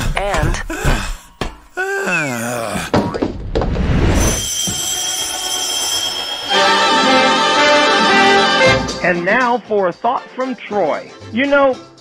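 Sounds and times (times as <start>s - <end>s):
high-pitched buzzer tone: 4.3s - 7.9s.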